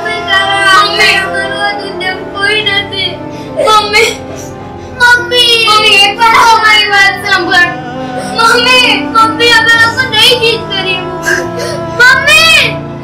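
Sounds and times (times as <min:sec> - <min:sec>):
high voice singing slow melody: 0:00.0 - 0:02.4, 0:07.2 - 0:13.0
sustained instrumental music: 0:00.0 - 0:13.0.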